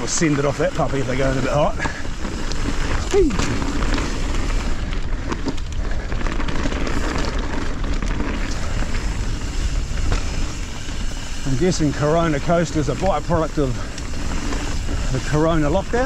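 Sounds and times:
bike tyres on dirt trail: 0.0 - 16.0.

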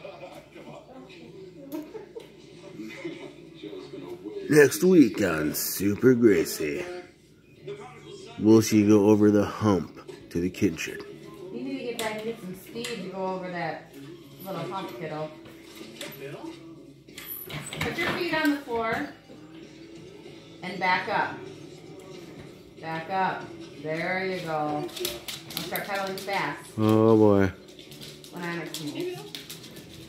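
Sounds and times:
quiet talking: 0.0 - 5.6.

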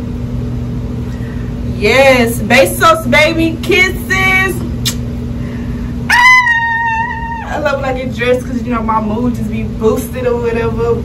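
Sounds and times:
woman singing falsetto note: 6.1 - 7.6.

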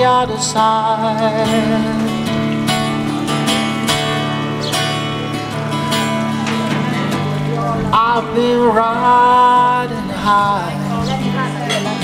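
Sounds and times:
acoustic guitar strumming: 0.0 - 12.0
person singing blues: 0.0 - 12.0.

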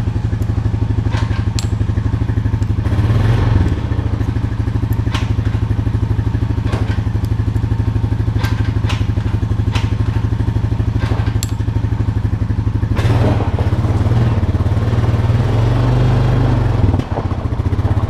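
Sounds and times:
atv engine idling: 0.0 - 18.0.

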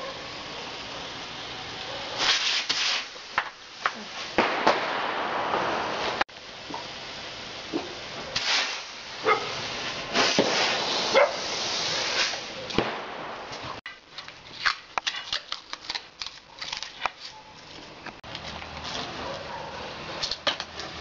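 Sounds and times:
firework hissing with sharp bursts: 0.0 - 13.8.

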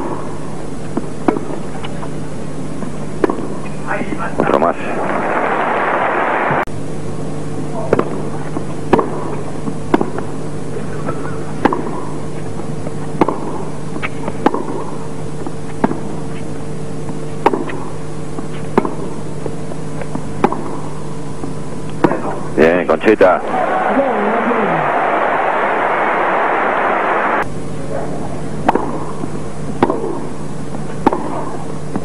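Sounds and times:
steady low hum: 0.0 - 32.0
tennis racket hitting ball: 3.2 - 3.6, 8.9 - 10.2, 11.6 - 12.1, 13.2 - 15.0, 15.8 - 16.2, 17.4 - 17.8, 18.7 - 19.2, 20.4 - 20.9, 28.6 - 29.2, 29.8 - 30.3, 31.0 - 31.6
crowd noise: 23.4 - 27.4.

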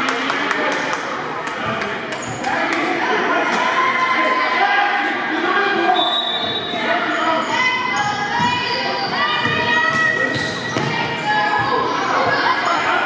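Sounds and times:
voices in echoing hall: 0.0 - 13.0.

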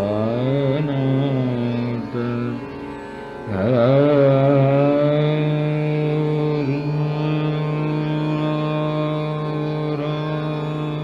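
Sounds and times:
man singing a long note: 0.0 - 2.7, 3.5 - 11.0
harmonium: 0.0 - 11.0.

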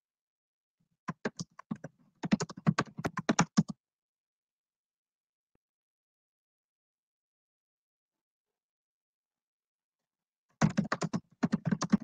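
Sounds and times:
computer keyboard typing: 1.1 - 3.7, 10.6 - 12.0.

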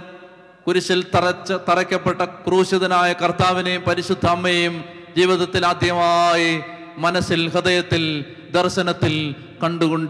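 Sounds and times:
man chanting into a microphone: 0.0 - 10.0.

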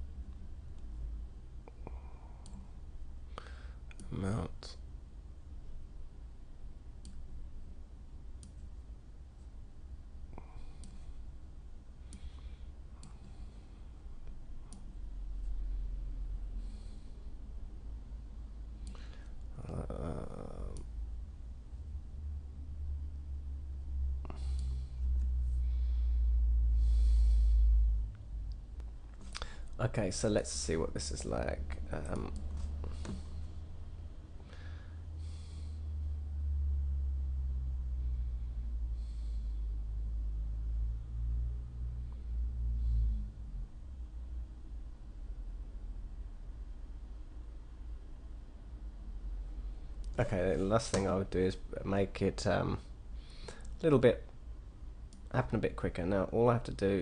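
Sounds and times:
low steady hum: 0.0 - 57.0
computer mouse clicks: 2.4 - 2.7, 10.7 - 11.0, 14.7 - 15.0.

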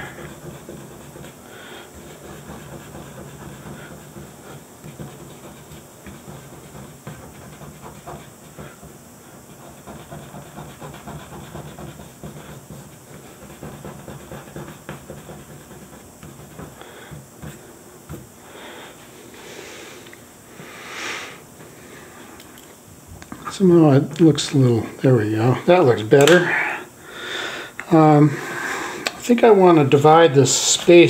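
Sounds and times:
fingertip rubbing on paper: 0.0 - 19.8.

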